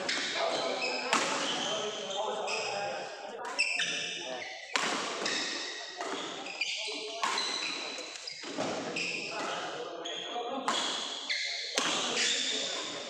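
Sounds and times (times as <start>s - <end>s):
shoes squeaking on court: 0.0s - 13.0s
voices: 0.0s - 13.0s
rackets hitting shuttlecock: 0.1s - 1.7s, 4.7s - 9.7s, 10.7s - 13.0s.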